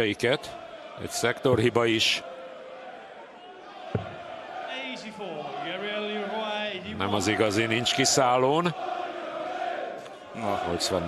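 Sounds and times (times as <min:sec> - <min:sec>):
crowd singing a chant: 0:00.0 - 0:11.0
dart striking board: 0:04.0 - 0:04.2.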